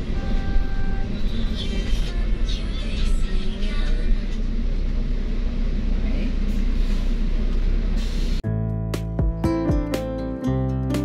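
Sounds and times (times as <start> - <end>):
bus engine and road rumble: 0.0 - 8.5.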